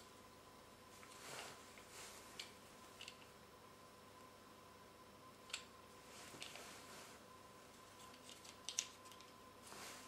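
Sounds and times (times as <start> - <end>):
fabric lampshade rustling: 0.9 - 2.4, 6.0 - 7.2, 9.6 - 10.0.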